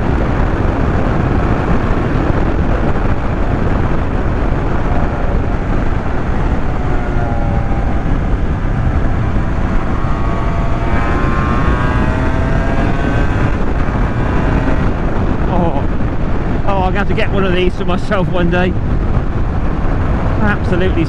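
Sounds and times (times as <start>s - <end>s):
motorcycle engine accelerating: 0.0s - 21.0s
wind noise on microphone: 0.0s - 21.0s.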